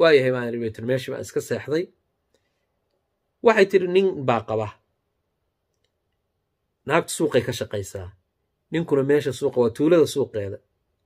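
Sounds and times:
man speaking: 0.0s - 2.0s, 3.4s - 4.9s, 6.8s - 10.8s.

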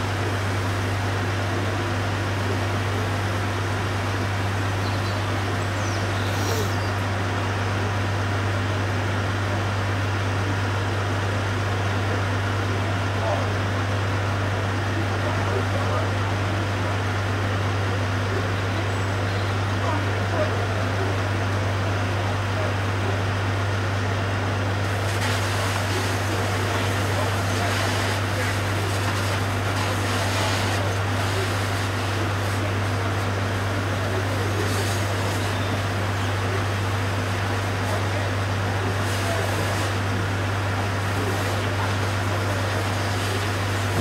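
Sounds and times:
fire engine motor droning: 0.0s - 44.0s.

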